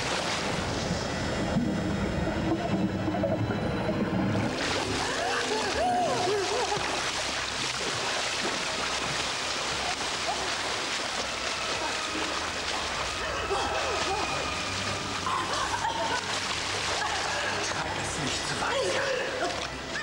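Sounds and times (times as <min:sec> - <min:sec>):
water splashing in a pool: 0:00.0 - 0:01.1, 0:04.4 - 0:20.0.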